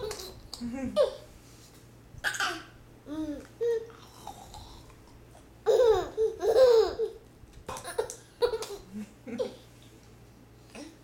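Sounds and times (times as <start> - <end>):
baby laughing: 5.6 - 9.6.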